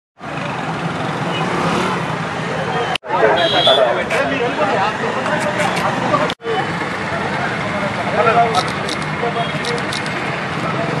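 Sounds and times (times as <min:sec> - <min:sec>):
road traffic hum: 0:00.2 - 0:11.0
people talking: 0:02.4 - 0:11.0.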